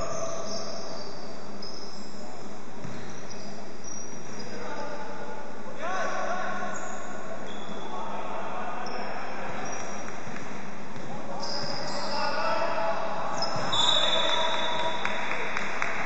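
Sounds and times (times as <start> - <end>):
sneaker squeaks: 0.0 - 4.8, 6.7 - 8.0, 8.8 - 12.5, 13.3 - 15.0.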